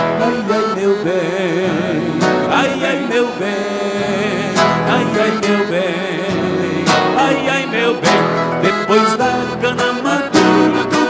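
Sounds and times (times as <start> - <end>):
accordion melody: 0.0 - 11.0
person singing: 0.0 - 11.0.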